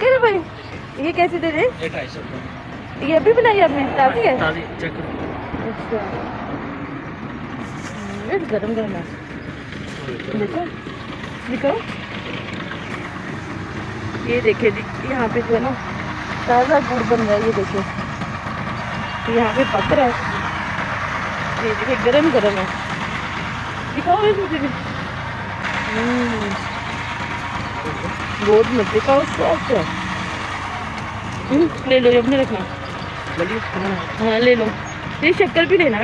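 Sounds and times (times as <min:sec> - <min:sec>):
vehicle engine rumbling: 0:00.0 - 0:36.0.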